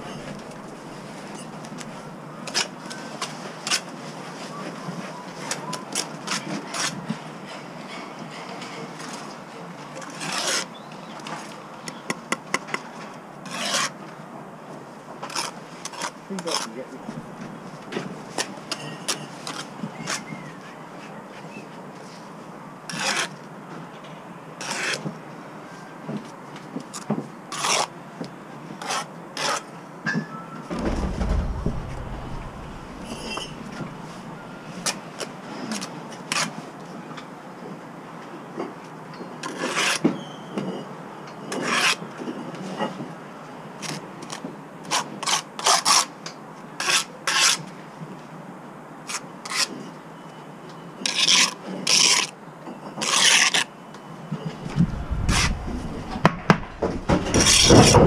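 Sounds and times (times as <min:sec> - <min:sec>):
low rumble: 0:00.0 - 0:01.2, 0:30.7 - 0:34.7, 0:54.5 - 0:57.8.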